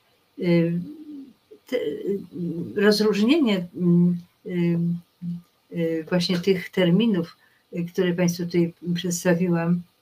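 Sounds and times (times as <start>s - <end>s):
woman speaking: 0.4s - 10.0s.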